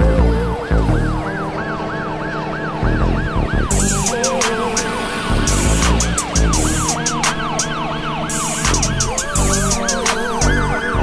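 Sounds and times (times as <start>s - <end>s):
hip-hop beat with deep bass: 0.0s - 11.0s
siren-like yelping tone: 0.0s - 11.0s
hi-hat ticks: 3.8s - 7.7s, 8.3s - 10.6s.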